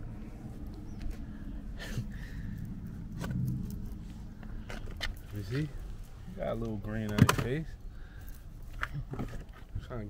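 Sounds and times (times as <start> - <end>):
car road and engine rumble: 0.0 - 10.0
light clicks and knocks: 6.6 - 7.6.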